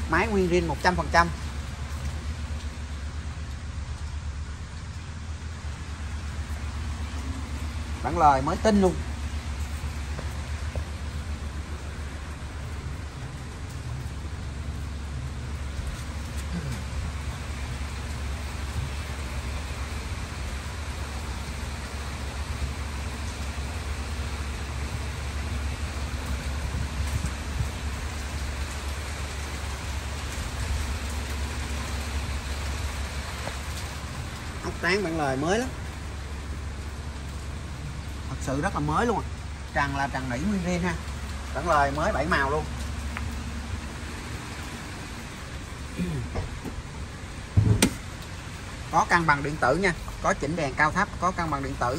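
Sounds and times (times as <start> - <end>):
steady rain falling: 0.0 - 51.9
low rumble: 35.7 - 51.9.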